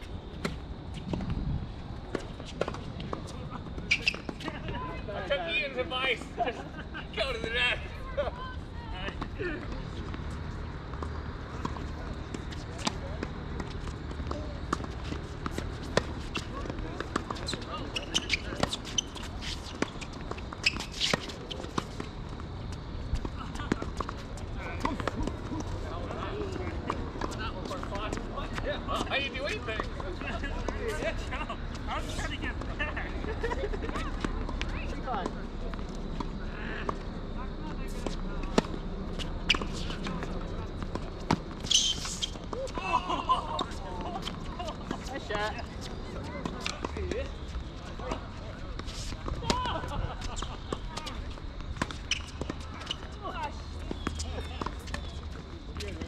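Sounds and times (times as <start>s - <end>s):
voices: 1.9s - 56.0s
people laughing: 6.1s - 8.6s, 24.6s - 26.7s, 28.9s - 34.4s, 42.6s - 45.7s, 49.3s - 51.4s.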